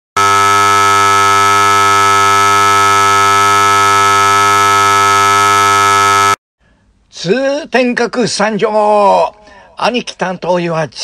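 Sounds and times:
electric buzzer tone: 0.2 - 6.4.

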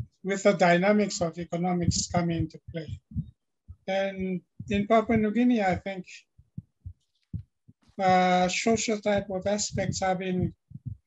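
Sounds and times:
faint low thumps: 0.0 - 11.0
man speaking: 0.3 - 3.0, 3.9 - 6.2, 8.0 - 10.6.

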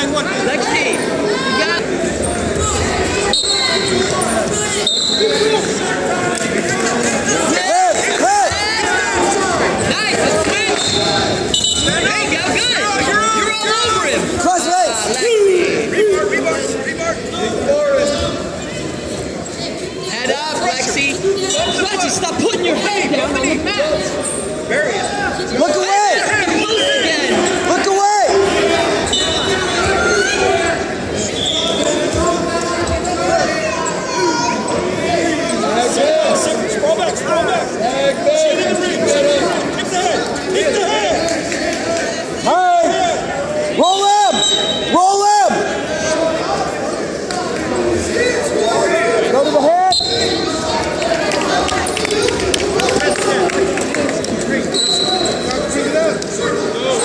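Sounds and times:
spectators shouting and cheering: 0.0 - 57.0
spectators shouting in hall: 2.6 - 16.6
referee's whistle: 3.3 - 4.0, 4.8 - 5.5, 10.7 - 12.1, 29.1 - 29.7, 31.2 - 32.0, 43.8 - 45.0, 49.9 - 50.5, 54.7 - 55.6.

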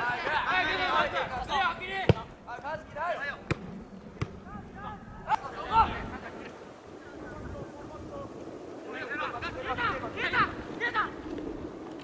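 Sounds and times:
soccer ball kicked thuds: 2.0 - 2.3, 3.4 - 4.4.

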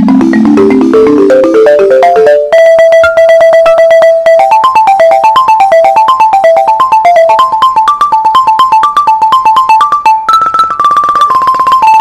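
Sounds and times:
balafon played with mallets: 0.0 - 12.0.

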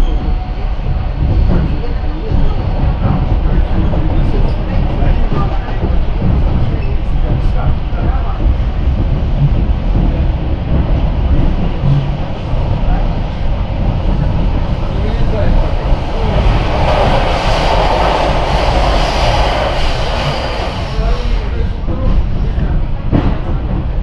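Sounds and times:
freight train rushing past: 0.0 - 24.0
train rumbling inside carriage: 0.0 - 24.0.

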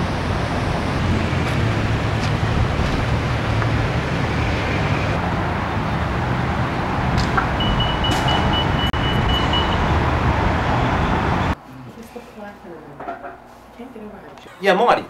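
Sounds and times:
wind rumbling on microphone: 0.0 - 11.5
traffic noise: 0.0 - 14.4.

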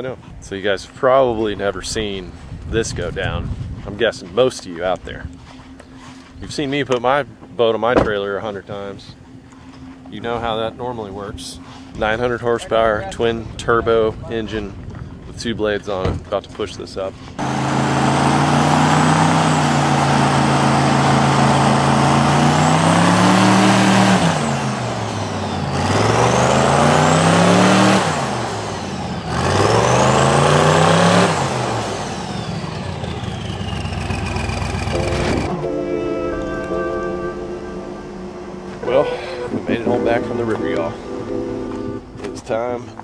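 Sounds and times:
airboat engine and propeller revving: 17.3 - 35.7
music with held notes: 34.9 - 42.3.

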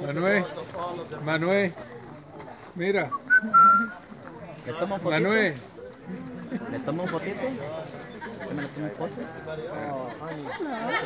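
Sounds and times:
person whistling: 3.1 - 3.9.

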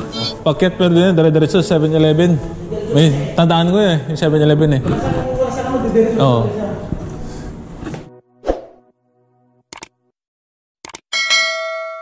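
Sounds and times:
quick clicks: 9.7 - 9.9, 10.8 - 11.0.

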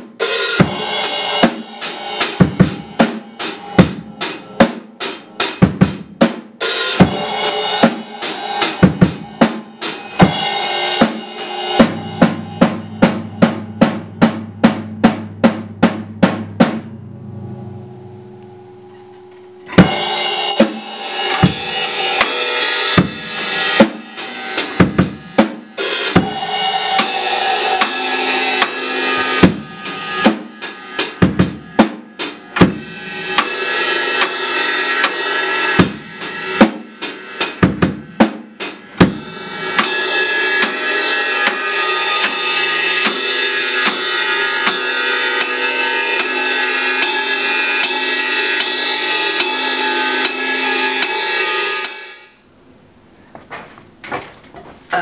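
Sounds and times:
rock drum kit beat: 0.0 - 17.0, 18.9 - 52.4
low held tone: 11.6 - 22.2.

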